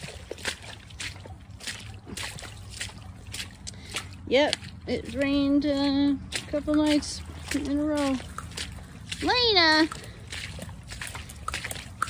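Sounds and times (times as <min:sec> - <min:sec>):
footsteps squelching through mud: 0:00.0 - 0:12.0.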